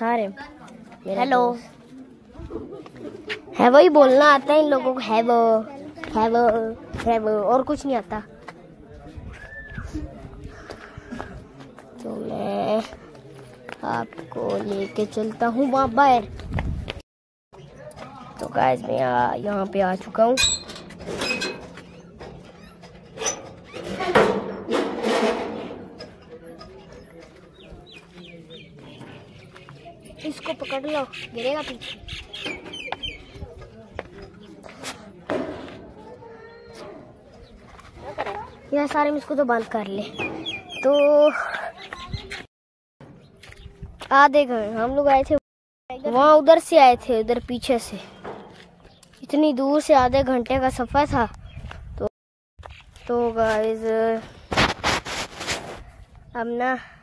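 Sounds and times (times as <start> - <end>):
bird chirping: 40.0 - 42.4.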